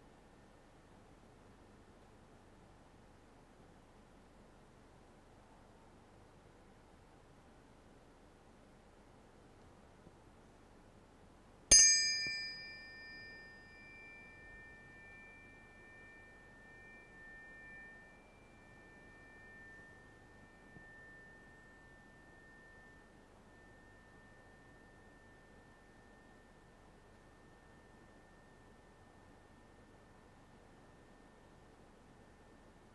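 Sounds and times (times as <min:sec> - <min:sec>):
tuning forks clinking: 0:11.7 - 0:28.8
tuning forks ringing high tones: 0:11.7 - 0:31.6.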